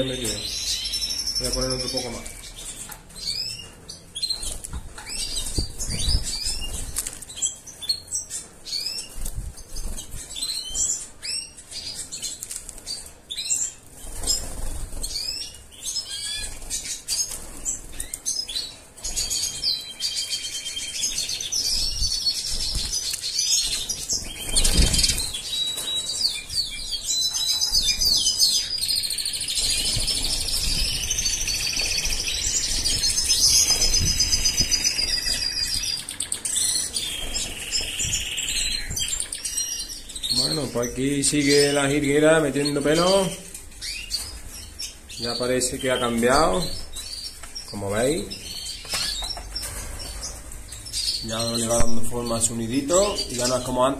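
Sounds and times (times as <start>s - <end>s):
goldfinches chirping: 0.0s - 9.2s, 15.0s - 49.4s
twittering birdsong with trills: 0.0s - 53.9s
wings fluttering in cage: 4.4s - 7.4s, 13.9s - 15.4s, 22.4s - 26.3s, 29.4s - 35.8s.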